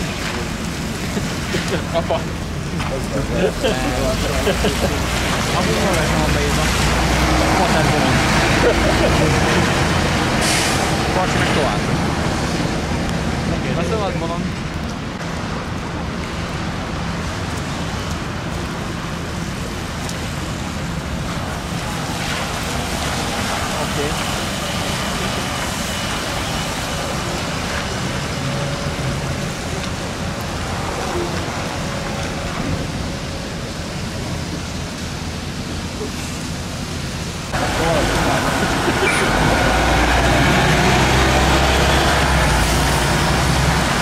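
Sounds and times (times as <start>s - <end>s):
traffic on wet road: 0.0s - 44.0s
trolleybus passing: 21.4s - 44.0s.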